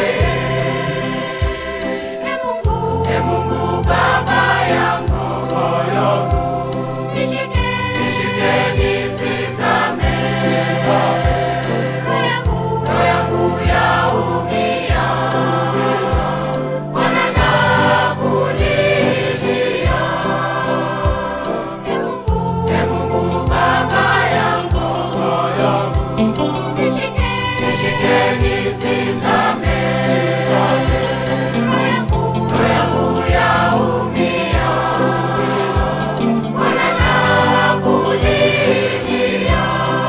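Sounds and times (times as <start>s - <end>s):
instrumental backing with bass: 0.0s - 40.0s
mixed choir singing a hymn: 0.0s - 40.0s.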